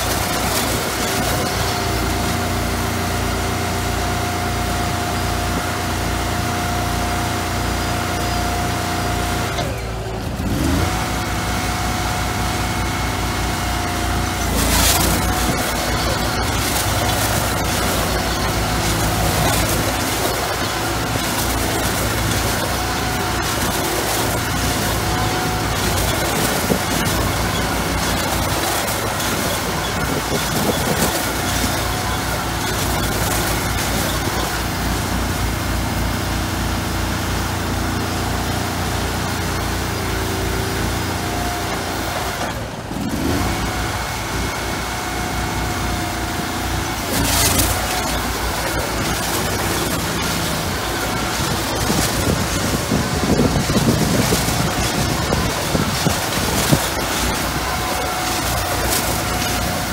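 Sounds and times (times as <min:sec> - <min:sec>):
skid-steer loader engine: 0:00.0 - 0:59.9
small gas engine running: 0:00.0 - 0:59.9.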